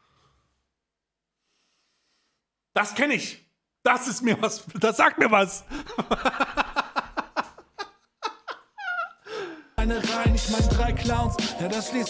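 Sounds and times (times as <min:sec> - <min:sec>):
man laughing: 0:05.6 - 0:09.6
rap song: 0:09.8 - 0:12.0.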